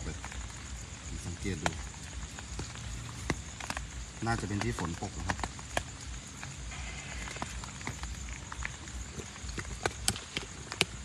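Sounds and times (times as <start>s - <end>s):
raindrops tapping on umbrella: 0.0s - 11.0s
steady hiss of rain: 0.0s - 11.0s.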